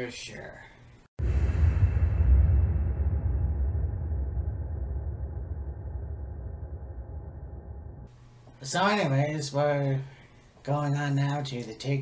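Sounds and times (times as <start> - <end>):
deep low rumble: 1.2 - 8.1.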